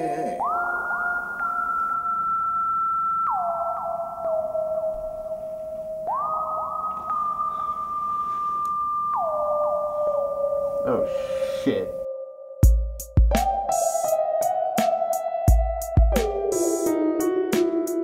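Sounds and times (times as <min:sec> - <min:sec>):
gliding electronic tone with echo: 0:00.0 - 0:12.6.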